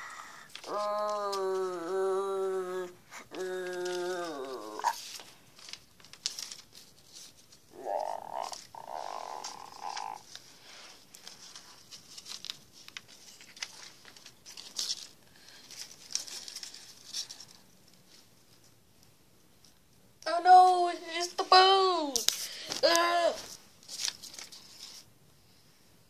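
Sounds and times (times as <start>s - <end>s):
paper rustling and crinkling: 0.3s - 18.8s, 21.1s - 25.1s
rasping growl-like noise: 7.7s - 10.2s.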